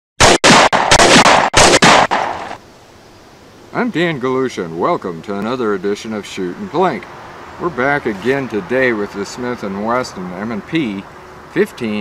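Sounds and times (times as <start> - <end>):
rapid gunfire bursts: 0.2 - 2.6.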